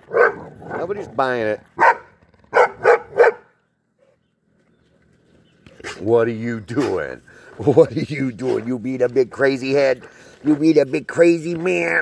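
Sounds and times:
dog barking: 0:00.1 - 0:00.8, 0:01.8 - 0:04.2.

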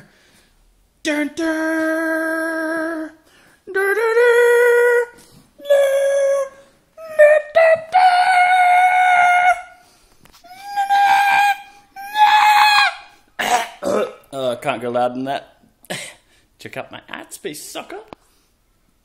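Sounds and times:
man singing mock fanfare: 0:01.1 - 0:09.7.

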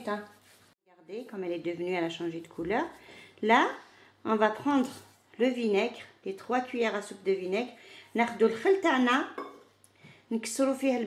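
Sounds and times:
woman speaking: 0:00.0 - 0:09.4, 0:10.3 - 0:11.0.

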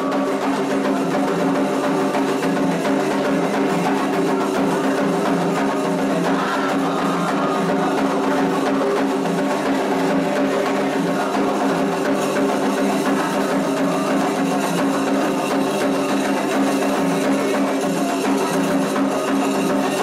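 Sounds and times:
group singing: 0:00.0 - 0:20.0
hand drums playing rhythm: 0:00.0 - 0:20.0.

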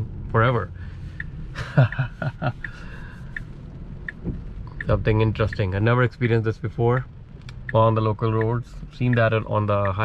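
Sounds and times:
low hum in car cabin: 0:00.0 - 0:10.0
man laughing: 0:01.6 - 0:03.0.

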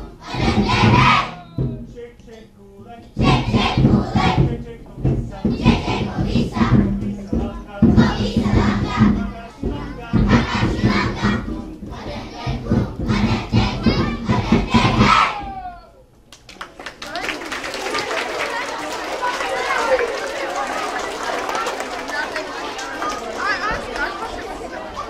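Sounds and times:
children's choir singing: 0:00.0 - 0:01.9, 0:02.9 - 0:15.6
steady beat: 0:00.0 - 0:02.2, 0:02.8 - 0:15.6
audience applauding and cheering: 0:16.3 - 0:24.0.

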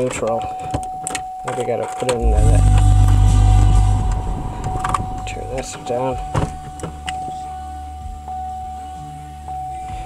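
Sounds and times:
thin high whine: 0:02.2 - 0:07.5
low hum: 0:02.2 - 0:07.6.

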